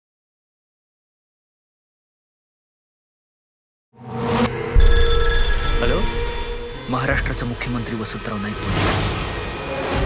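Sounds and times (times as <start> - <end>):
high ringing tones: 4.6 - 8.6.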